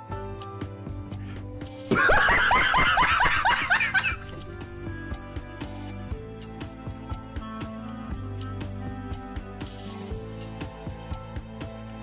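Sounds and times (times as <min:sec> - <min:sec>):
rapid high-pitched laughter: 0:01.9 - 0:04.4.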